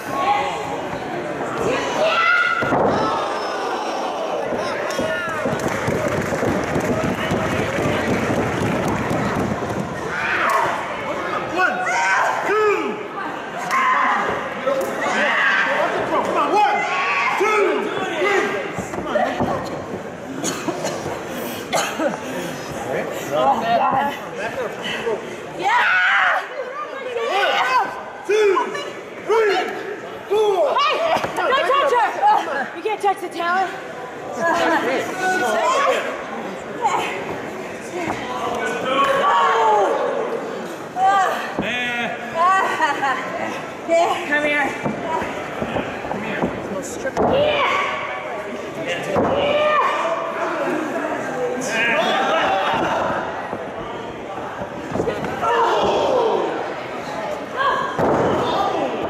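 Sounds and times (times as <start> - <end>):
people's voices in a hall: 0.0 - 59.0
short cough: 20.4 - 21.1, 21.7 - 22.2
thud: 58.0 - 58.5.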